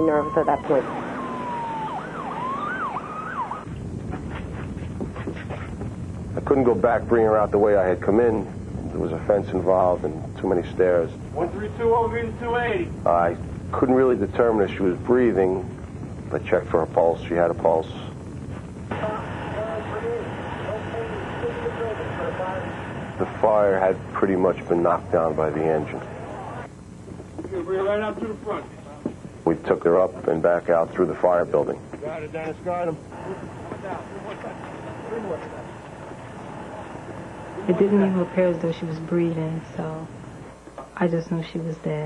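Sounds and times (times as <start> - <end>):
faint distant voices calling: 0.0 - 3.6
ambulance siren: 0.0 - 3.7
steady rushing noise: 0.0 - 40.6
low rumbling noise: 0.0 - 42.0.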